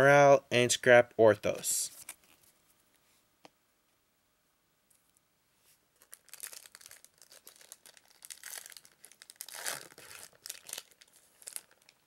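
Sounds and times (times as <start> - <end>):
wrapper crinkling and tearing: 6.0 - 12.0.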